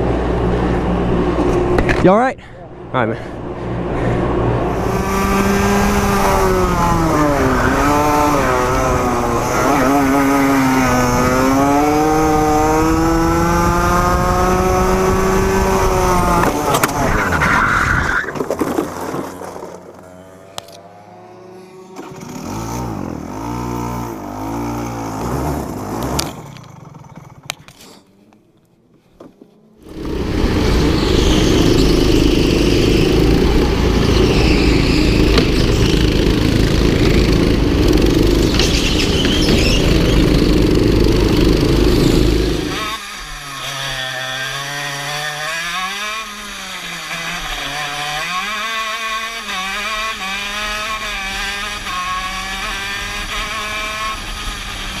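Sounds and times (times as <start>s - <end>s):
loud steady engine noise: 2.6s - 16.9s, 29.8s - 55.0s
go-kart engine revving: 3.8s - 28.1s, 29.8s - 55.0s.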